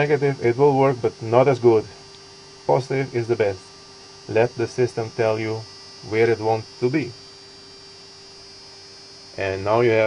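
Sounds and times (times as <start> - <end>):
electrical hum with high whine: 0.0 - 10.0.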